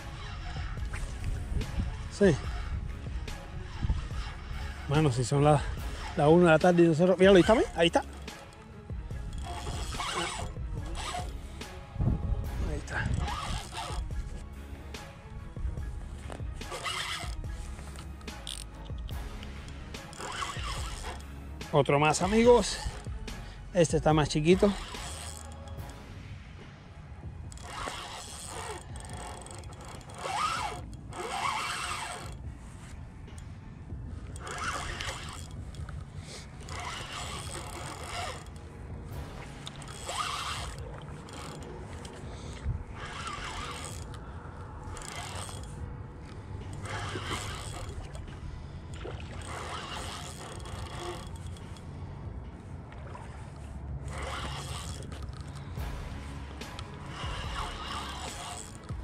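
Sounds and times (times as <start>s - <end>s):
fishing reel cranking: 0.0s - 26.2s, 27.4s - 59.0s
low steady rumble: 0.0s - 59.0s.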